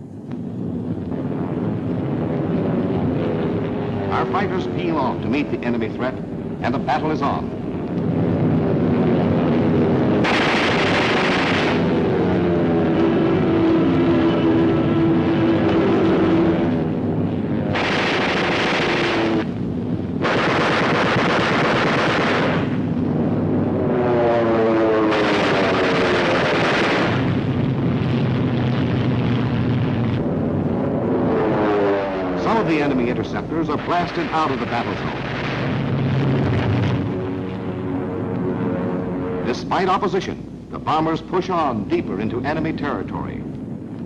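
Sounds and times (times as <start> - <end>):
propeller plane engines: 0.0 - 44.0
machine-gun fire: 10.2 - 12.2, 17.7 - 19.6, 20.2 - 22.9, 25.0 - 27.5.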